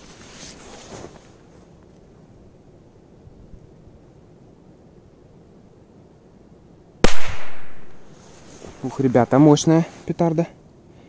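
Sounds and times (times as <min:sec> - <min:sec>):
firecracker bang with echo: 0:07.0 - 0:08.0.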